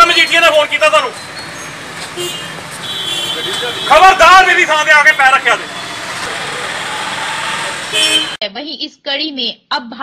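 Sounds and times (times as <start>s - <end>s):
street noise hiss: 0.0s - 8.4s.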